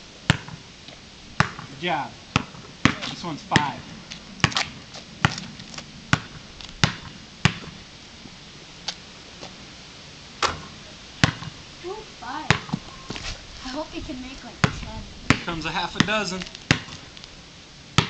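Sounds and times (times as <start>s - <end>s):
basketball bouncing on concrete: 0.3s - 0.6s, 1.4s - 1.7s, 2.3s - 3.8s, 4.4s - 5.5s, 6.1s - 7.7s, 10.5s - 11.6s, 12.5s - 12.8s, 14.6s - 17.0s.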